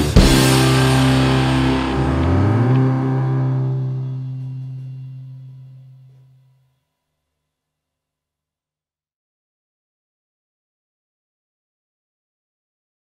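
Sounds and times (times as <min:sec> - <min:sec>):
distorted electric guitars: 0:00.0 - 0:06.2
bass guitar: 0:00.0 - 0:06.4
cymbal wash: 0:00.0 - 0:06.4.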